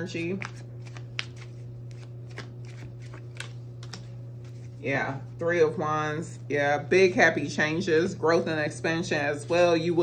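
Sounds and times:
cards being shuffled: 0.0 - 4.8.

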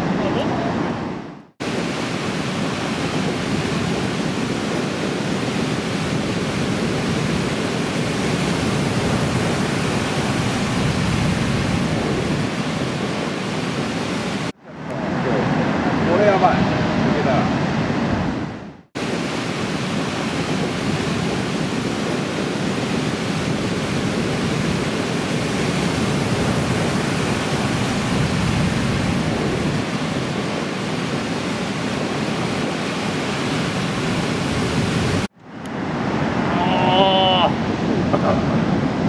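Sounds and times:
surf breaking: 1.6 - 18.0, 19.0 - 38.6.

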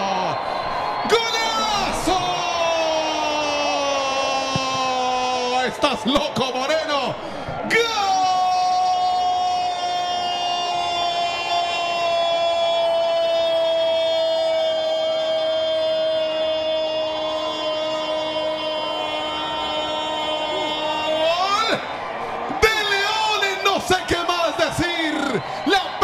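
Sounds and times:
commentator shouting goal cry: 1.0 - 21.9.

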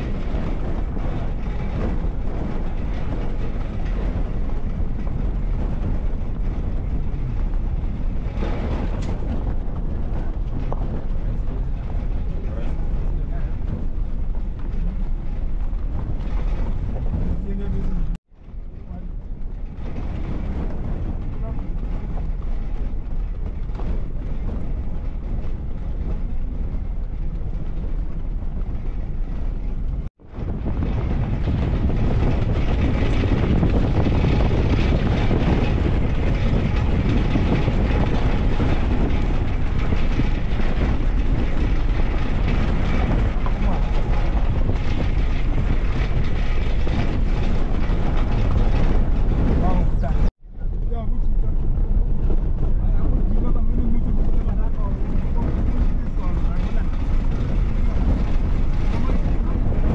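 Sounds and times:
vehicle engine and tyres on dirt: 0.0 - 59.9
wind on microphone: 0.0 - 59.9.

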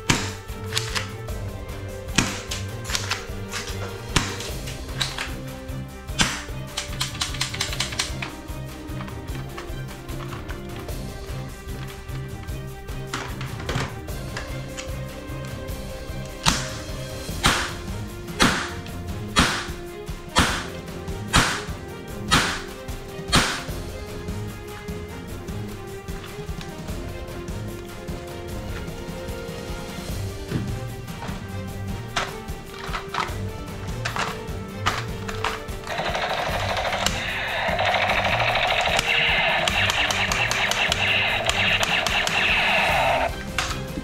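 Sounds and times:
cap gun bangs: 0.0 - 0.9, 2.2 - 4.5, 6.2 - 6.6, 17.4 - 18.8, 19.4 - 19.8, 20.4 - 22.7, 23.3 - 23.7
background music: 0.0 - 44.0
toy gun rapid-fire effect: 35.9 - 43.3.

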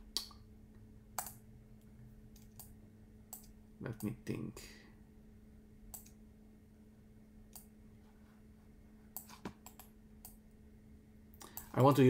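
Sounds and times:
faint electrical hum: 0.0 - 12.0
computer keyboard clicks: 1.2 - 1.4, 9.2 - 10.4.

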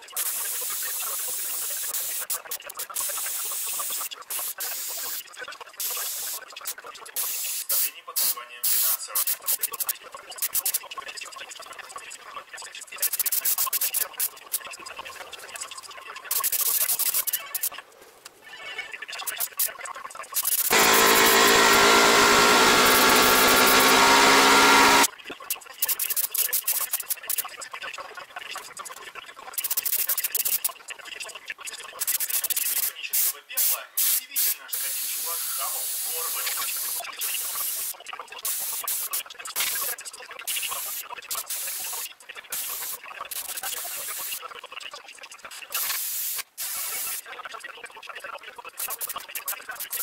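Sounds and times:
paint sprayer hissing: 3.0 - 5.2, 7.2 - 8.9, 20.4 - 25.1, 32.4 - 39.8, 40.5 - 42.0, 42.6 - 44.4, 45.8 - 47.2
airbrush hissing spurts: 5.8 - 6.4, 40.5 - 44.4, 45.7 - 47.2.

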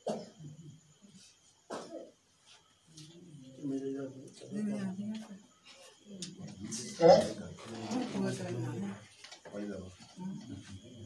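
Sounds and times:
person coughing: 0.0 - 0.4, 1.7 - 2.1.

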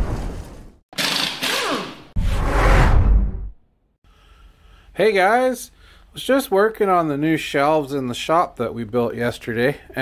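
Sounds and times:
deep whoosh: 2.2 - 3.6.

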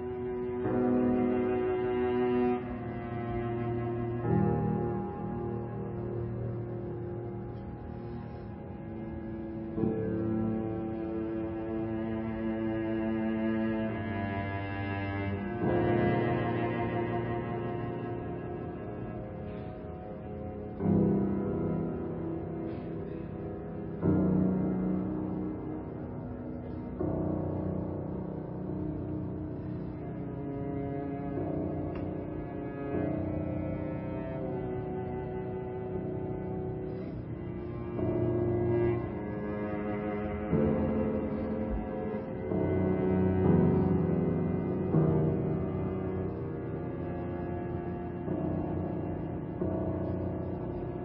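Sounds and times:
cello bowed low notes: 0.0 - 51.0.

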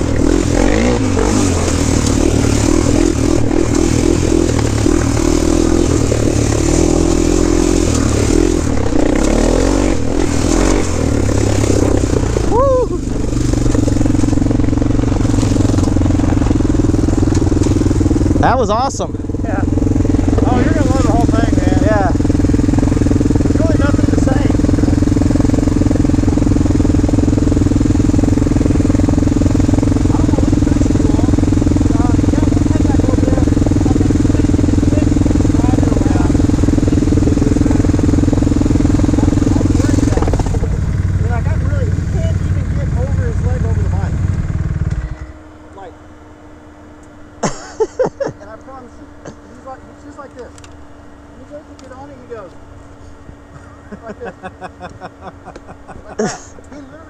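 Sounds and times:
quad and dirt bike engines idling: 0.0 - 57.0.

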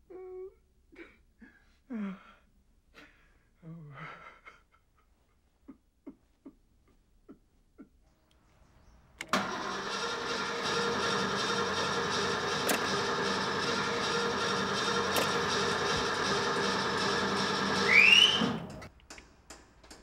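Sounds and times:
car engine starting and running: 9.1 - 19.0
engine revving with whine: 9.3 - 18.9.

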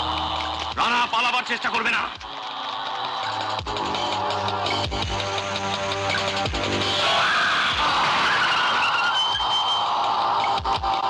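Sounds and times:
background music with drum beat: 2.0 - 7.0, 9.3 - 11.0
high squeal: 7.0 - 10.2.

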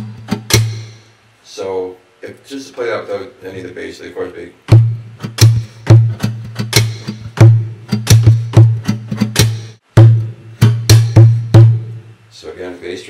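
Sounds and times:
percussive acoustic guitar groove: 0.0 - 1.0, 4.7 - 12.0.

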